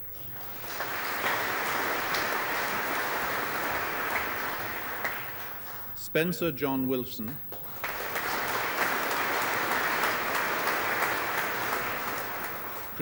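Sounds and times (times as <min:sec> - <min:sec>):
audience applauding: 0:00.0 - 0:06.3, 0:07.4 - 0:13.0.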